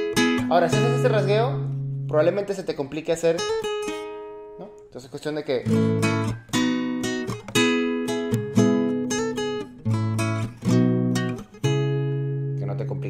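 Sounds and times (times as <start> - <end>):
classical guitar strumming chords: 0.0 - 5.0, 5.6 - 13.0.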